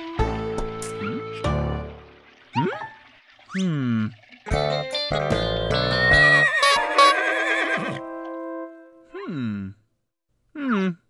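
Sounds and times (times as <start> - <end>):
horse whinny: 6.1 - 8.0.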